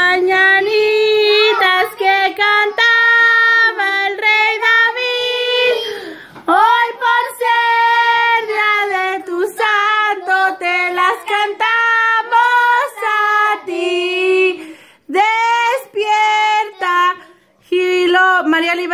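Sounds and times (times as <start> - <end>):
children singing together: 0.0 - 17.4.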